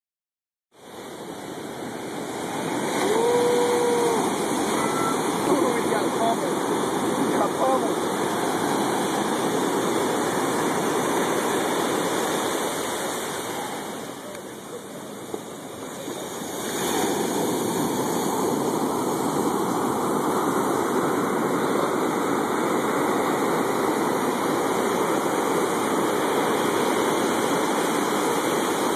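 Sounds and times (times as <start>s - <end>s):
ocean surf breaking: 0.8s - 28.9s
person's long call: 2.9s - 5.4s.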